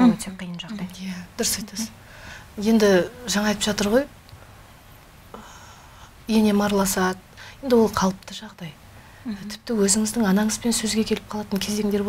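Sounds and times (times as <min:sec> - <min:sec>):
woman talking: 0:00.0 - 0:02.0, 0:02.6 - 0:04.1, 0:06.3 - 0:12.0.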